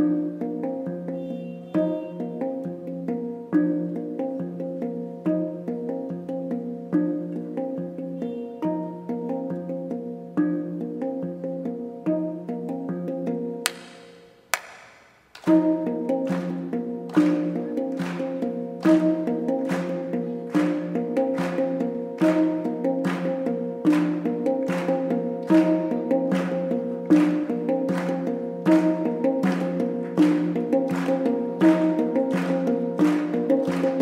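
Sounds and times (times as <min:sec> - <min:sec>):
handpan melody: 0:00.0 - 0:14.5, 0:15.4 - 0:34.0
sharp bright handpan strikes: 0:00.0 - 0:34.0.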